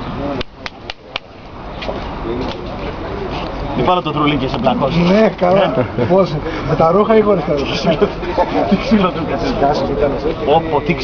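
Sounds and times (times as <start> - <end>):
hand slapping neck: 0.4 - 1.3.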